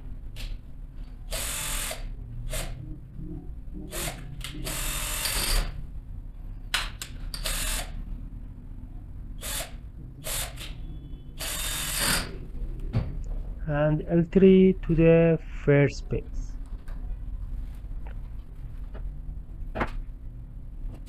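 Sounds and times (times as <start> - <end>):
cordless drill-driver bursts: 1.3 - 2.8, 3.9 - 5.7, 7.3 - 7.9, 9.4 - 10.8, 11.4 - 12.3.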